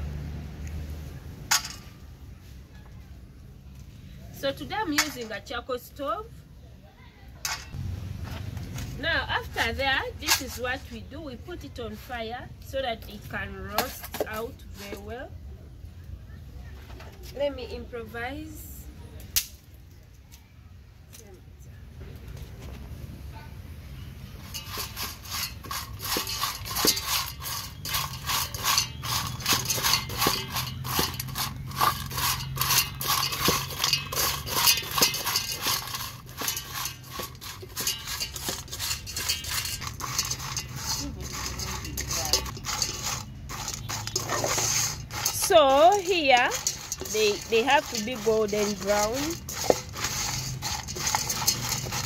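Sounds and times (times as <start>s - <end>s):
fish dry-roasting in a metal pan: 3.6s - 6.0s, 7.3s - 15.3s, 23.8s - 52.0s
dry scraping and rustling: 7.4s - 15.2s, 24.3s - 52.0s.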